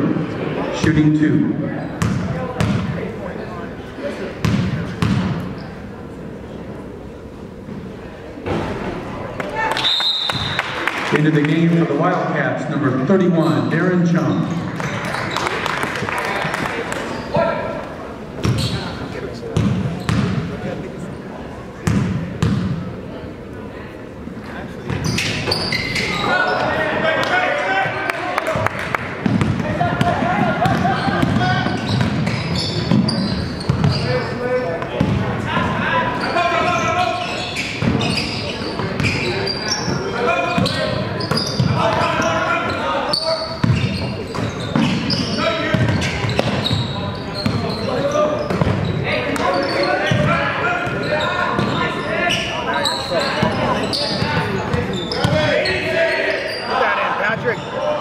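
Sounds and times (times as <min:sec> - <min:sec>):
spectators and players calling out: 0:25.0 - 0:58.0.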